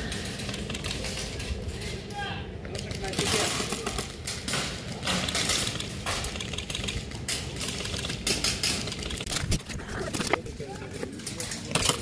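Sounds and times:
faint voices: 9.7 - 12.0.

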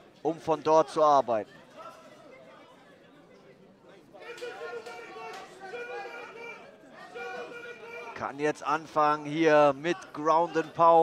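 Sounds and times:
faint hall noise: 0.0 - 11.0
voices shouting in an arena: 0.3 - 11.0.

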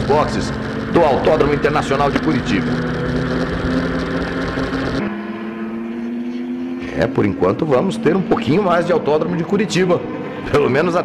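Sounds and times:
racing car engine: 0.0 - 11.0.

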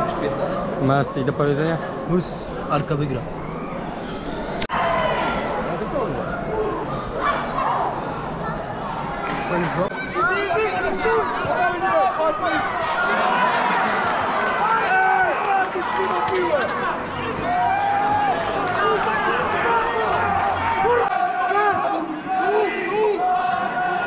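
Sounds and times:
crowd shouting and calling: 0.0 - 24.0.

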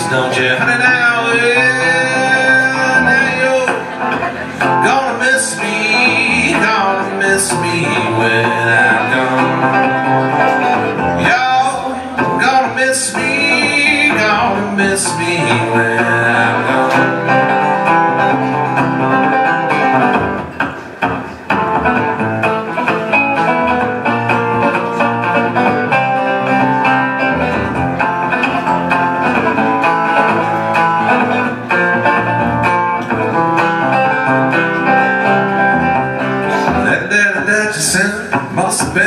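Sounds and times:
hollow-body guitar picked notes: 0.0 - 39.0.

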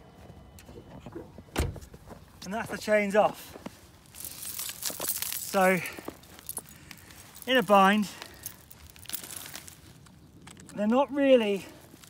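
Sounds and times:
rustling and crinkling handling noise: 1.8 - 12.0.

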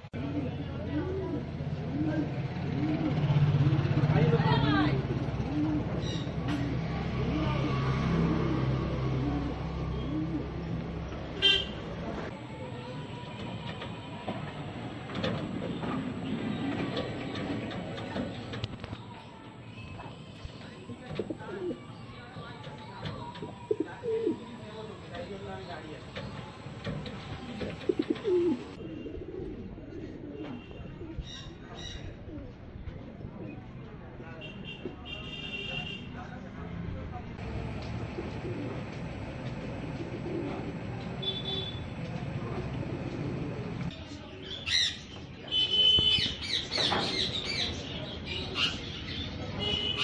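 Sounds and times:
pigeon cooing: 0.2 - 10.8, 21.1 - 21.9, 23.1 - 24.6, 27.4 - 32.6, 38.0 - 39.0, 39.8 - 40.9.

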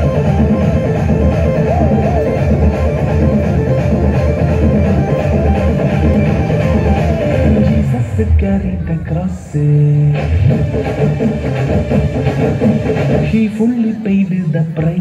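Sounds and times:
heavy bass beat: 0.0 - 15.0.

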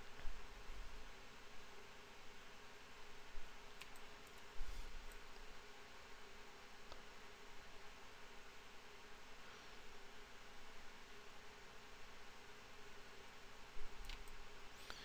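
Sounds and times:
room hiss and hum: 0.0 - 15.0
computer mouse clicks: 3.8 - 5.4, 13.9 - 15.0.

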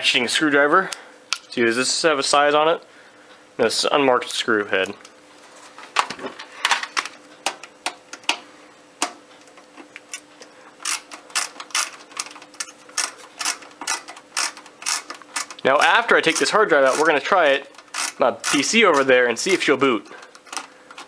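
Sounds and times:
ratcheting screwdriver clicks: 10.8 - 15.6, 16.3 - 19.7.

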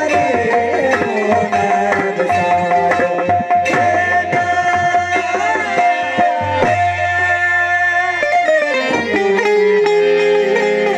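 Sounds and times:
plucked string instruments: 0.0 - 10.9.

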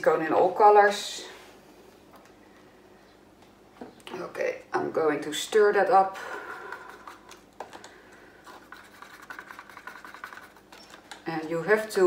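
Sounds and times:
stick stirring paint in plastic cup: 6.4 - 11.8.

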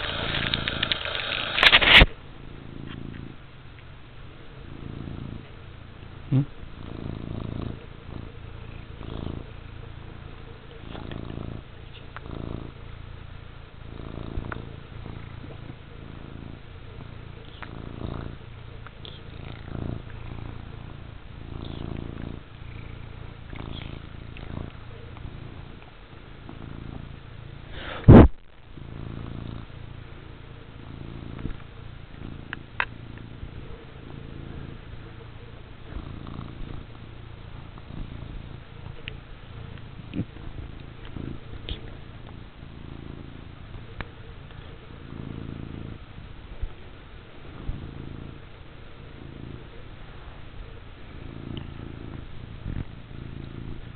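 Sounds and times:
cat purring: 0.0 - 53.9.

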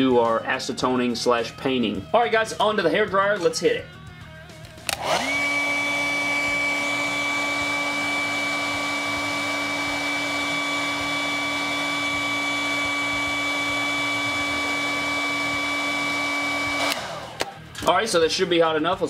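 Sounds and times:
hair dryer running: 4.8 - 17.7.

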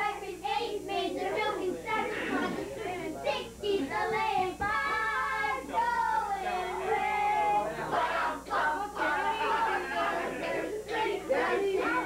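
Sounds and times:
children and women singing: 0.0 - 12.0.

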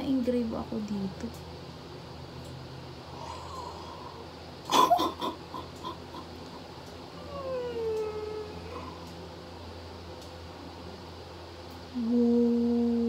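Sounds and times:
woman whimpering hum: 3.1 - 6.4, 7.2 - 9.1, 11.9 - 13.0
woman laughing: 4.7 - 6.6.

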